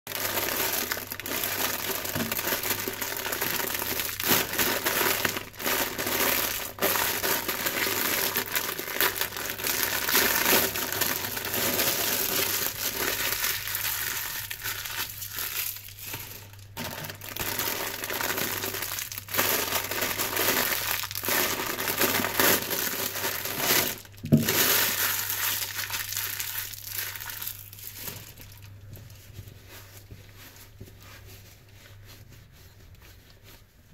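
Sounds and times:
plastic wrappers crinkling: 0:00.1 - 0:30.4.

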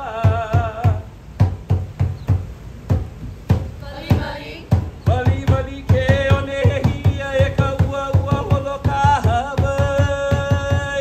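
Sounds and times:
gourd drum hollow strokes: 0:00.0 - 0:11.0.

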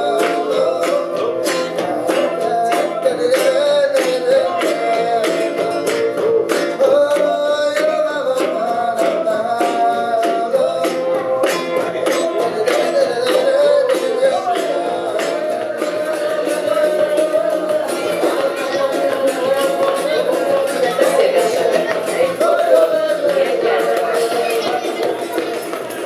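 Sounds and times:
cajon beat: 0:00.0 - 0:26.0
man singing: 0:00.0 - 0:26.0
strummed acoustic guitar: 0:00.0 - 0:26.0.

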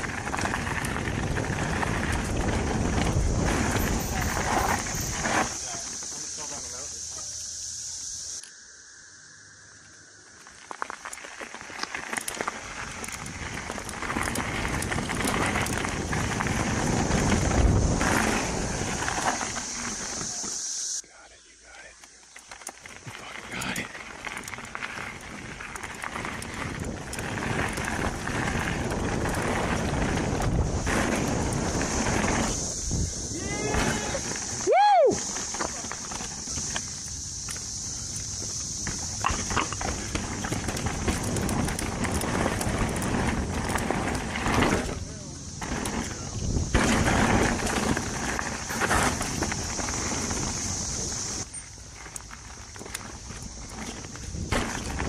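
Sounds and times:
mountain bike tyre and rattle noise: 0:00.0 - 0:08.4, 0:09.9 - 0:21.0, 0:21.8 - 0:55.0
steady high hiss: 0:01.8 - 0:55.0.

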